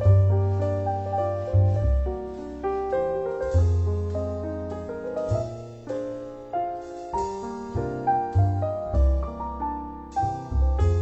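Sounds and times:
slow piano chords: 0.0 - 11.0.

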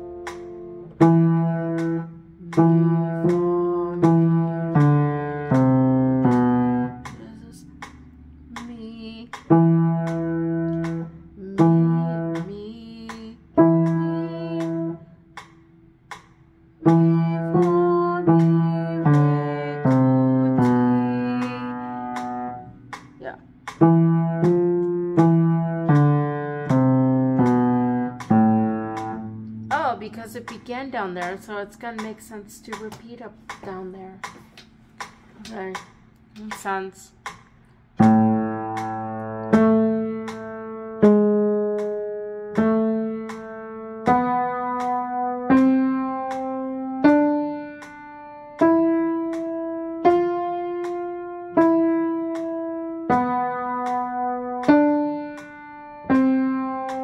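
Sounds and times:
upright piano practice phrases: 0.0 - 57.0.

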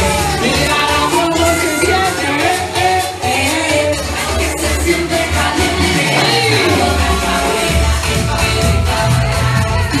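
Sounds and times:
dance music with sung vocals: 0.0 - 10.0.

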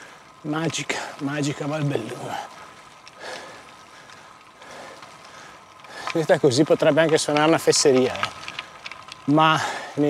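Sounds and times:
bike tyres crunching on gravel: 0.0 - 10.0.

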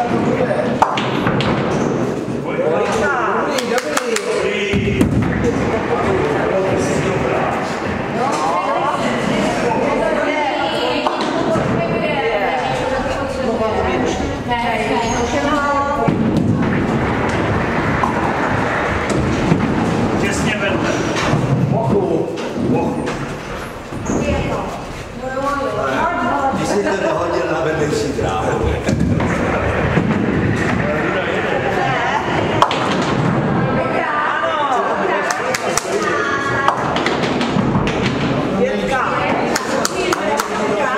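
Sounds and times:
voices chatting: 0.0 - 40.9
bowling ball rolling on wooden lane: 10.9 - 25.0, 28.2 - 40.8.

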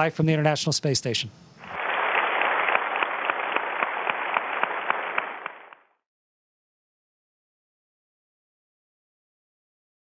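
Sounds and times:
audience applauding: 1.8 - 5.9.

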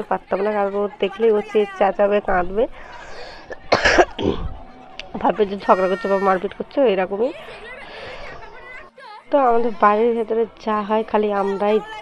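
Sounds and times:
person coughing: 3.5 - 4.6.

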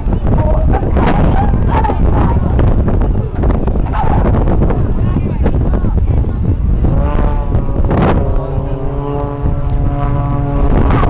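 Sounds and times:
wind buffeting microphone: 0.0 - 11.0
aircraft engine drone overhead: 6.4 - 11.0.

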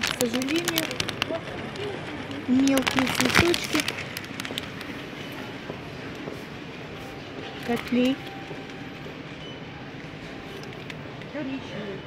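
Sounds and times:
plastic sleeves crinkling: 0.0 - 5.0
shop hall background noise: 0.0 - 12.0.

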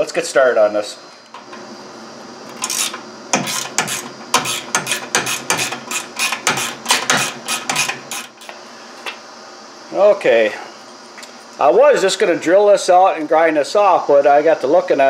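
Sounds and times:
ratchet wrench clicking: 2.6 - 8.6.

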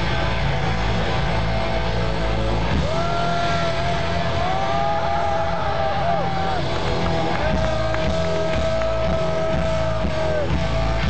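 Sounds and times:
live hard rock band: 0.0 - 11.0.

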